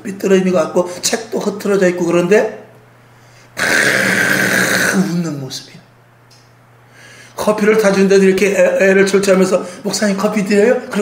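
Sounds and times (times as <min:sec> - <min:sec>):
man's strained raspy shout: 0:03.6 - 0:05.2.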